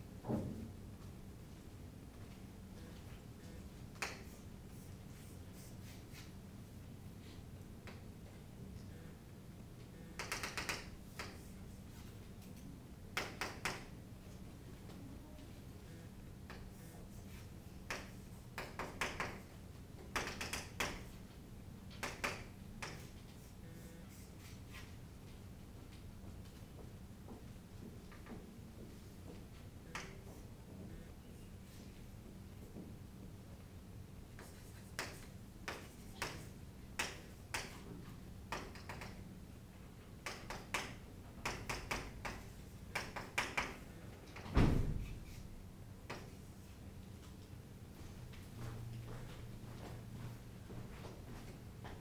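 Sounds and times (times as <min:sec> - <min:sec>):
chalk tapping on chalkboard: 0:10.2 - 0:11.5, 0:13.2 - 0:13.8, 0:16.5 - 0:19.4, 0:22.0 - 0:23.5, 0:34.4 - 0:37.9, 0:40.2 - 0:43.8.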